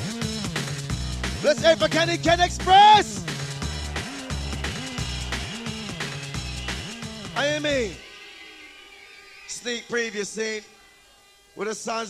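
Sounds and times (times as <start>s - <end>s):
rave music: 0.0s - 12.0s
man calling into microphone: 1.4s - 3.3s, 7.4s - 8.0s, 9.5s - 10.7s, 11.6s - 12.0s.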